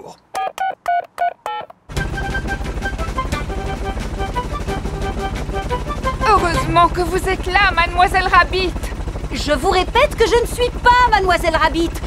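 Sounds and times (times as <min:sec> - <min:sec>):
helicopter rotor beat: 0:01.9 - 0:12.0.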